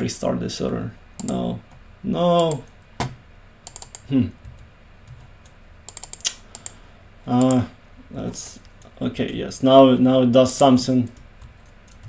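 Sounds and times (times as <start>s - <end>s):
computer keyboard typing: 1.2s - 1.4s, 2.4s - 2.8s, 3.6s - 7.7s, 11.0s - 12.0s.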